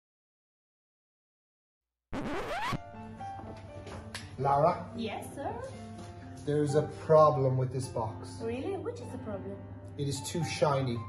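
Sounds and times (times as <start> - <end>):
quiet background music: 2.6 - 11.0.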